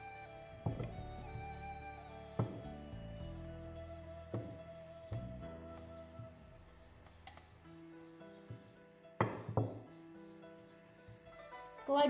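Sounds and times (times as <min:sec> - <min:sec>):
soft background music: 0:00.0 - 0:12.0
rolling pin knocking on mat: 0:09.2 - 0:09.8.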